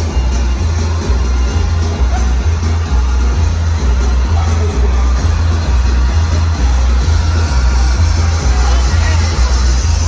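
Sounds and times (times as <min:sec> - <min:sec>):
electronic dance music: 0:00.0 - 0:10.0
pulsing heavy bass: 0:00.0 - 0:10.0.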